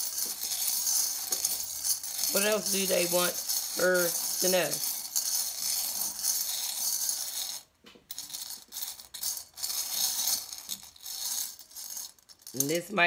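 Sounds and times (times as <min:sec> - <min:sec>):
metal charms jingling: 0:00.0 - 0:12.9.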